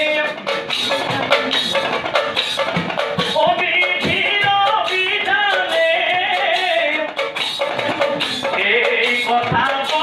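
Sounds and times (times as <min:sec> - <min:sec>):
kettle drums beating: 0:00.0 - 0:10.0
man singing devotional song: 0:03.2 - 0:07.2, 0:07.8 - 0:10.0.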